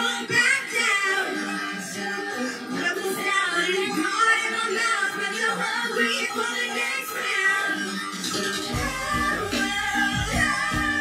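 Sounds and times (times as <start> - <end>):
live pop band: 8.2 - 11.0.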